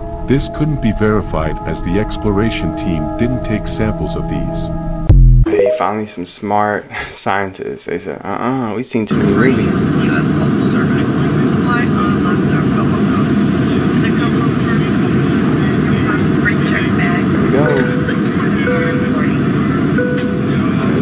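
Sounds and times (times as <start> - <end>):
airliner cabin drone: 9.1 - 21.0
faint voices: 9.2 - 21.0.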